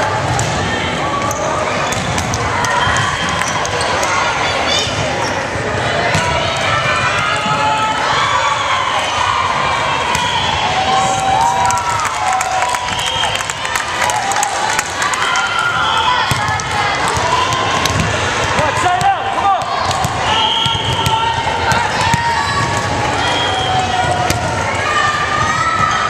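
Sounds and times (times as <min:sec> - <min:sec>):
people calling out and cheering: 0:00.0 - 0:26.0
volleyball being struck: 0:16.3 - 0:22.9.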